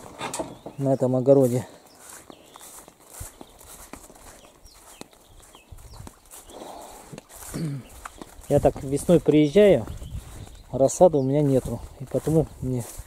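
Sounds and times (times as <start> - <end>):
footsteps on grass: 0.0 - 13.0.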